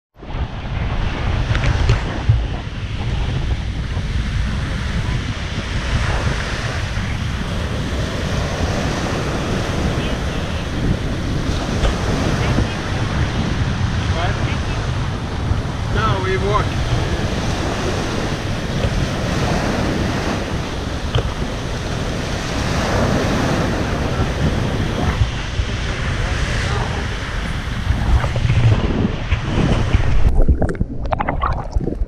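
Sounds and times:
small waves breaking on beach: 0.2s - 30.3s
wind buffeting microphone: 0.2s - 32.0s.

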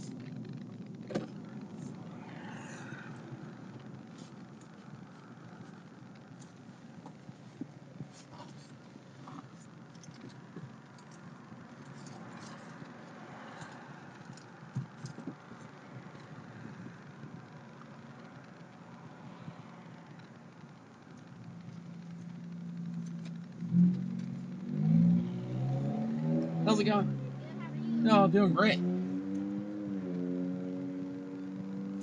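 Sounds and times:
truck engine and road noise: 0.0s - 32.0s
light clicks and rattles: 3.8s - 19.1s.

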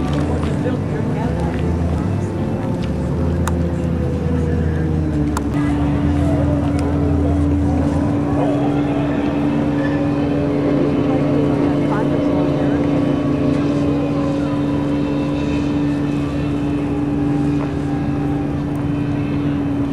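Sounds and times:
engine drone: 0.0s - 19.9s
faint voices: 0.0s - 19.9s.

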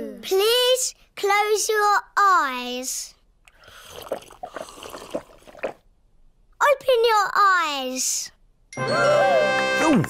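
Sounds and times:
water gulps and slurps: 3.5s - 5.9s.

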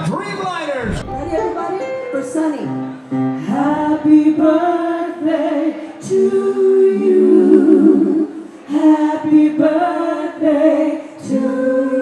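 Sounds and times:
women singing in harmony: 3.4s - 12.0s.

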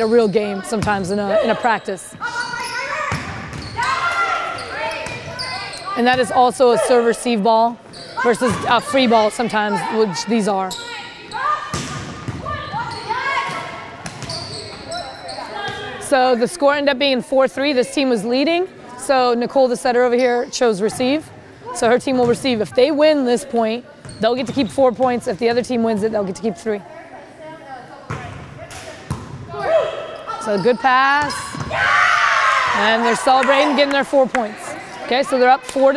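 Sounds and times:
players calling out: 0.0s - 16.8s, 29.5s - 35.9s
volleyball being hit: 11.7s - 12.5s
players shouting: 29.5s - 35.9s.

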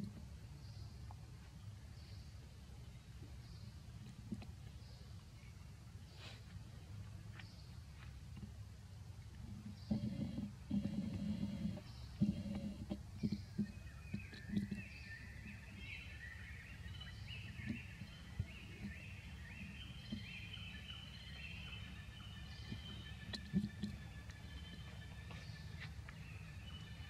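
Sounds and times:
birds chirping: 0.0s - 27.0s.

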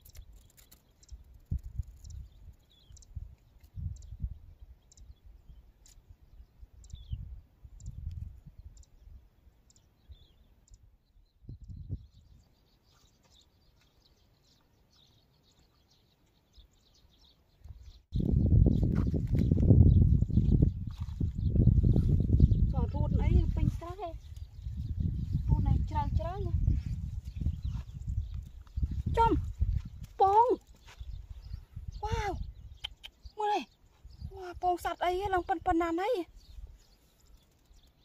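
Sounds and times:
wind rumble on microphone: 0.0s - 12.6s, 17.5s - 38.0s
small birds chirping: 0.0s - 38.0s
loud wind buffeting microphone: 1.1s - 5.6s, 6.3s - 9.2s, 11.3s - 12.5s, 17.7s - 36.9s.

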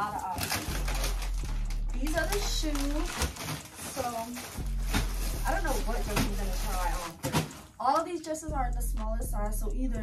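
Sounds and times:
plastic bags rustling: 0.0s - 8.0s.

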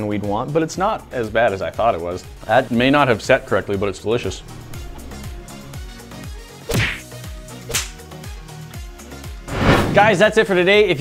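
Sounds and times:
background music: 0.0s - 11.0s
whoosh transition effects: 9.5s - 10.2s.

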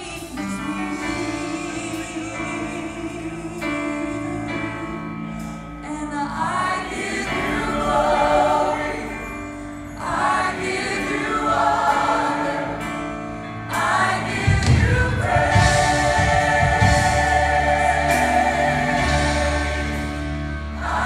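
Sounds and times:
woman singing lead vocal: 0.0s - 7.7s
gospel choir singing: 0.0s - 21.0s
keyboard and band: 0.0s - 21.0s
heavy bass: 13.7s - 21.0s.

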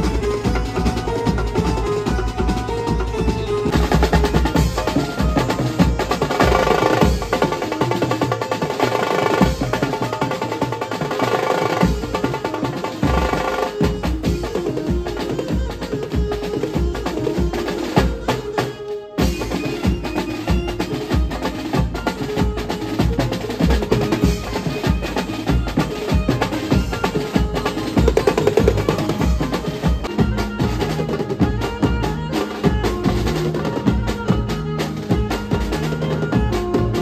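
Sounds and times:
drums played fast with sticks: 0.0s - 37.0s
melody line over drums: 0.0s - 37.0s.

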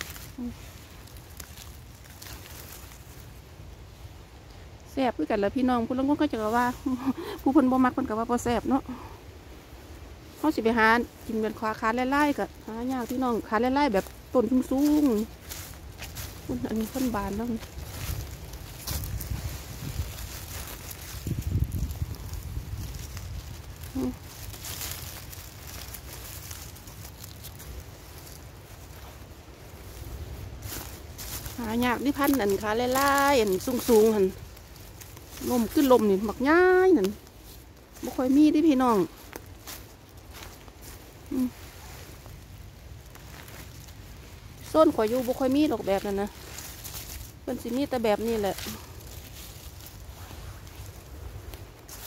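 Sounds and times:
dry leaves rustling: 0.0s - 52.0s
low steady rumble: 0.0s - 52.0s
microphone handling rumble: 16.5s - 24.4s.

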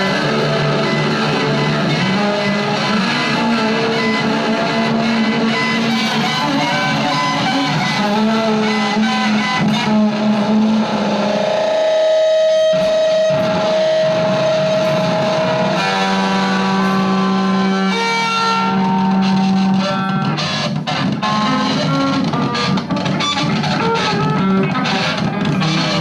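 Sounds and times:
effected electric guitar tones: 0.0s - 26.0s.

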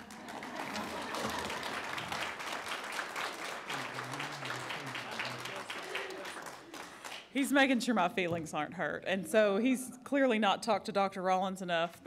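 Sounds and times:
audience clapping: 0.0s - 7.6s.

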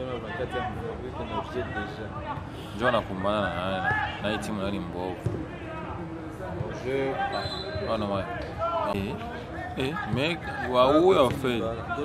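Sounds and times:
men talking and calling out: 0.0s - 12.0s
football being kicked: 5.2s - 5.5s.

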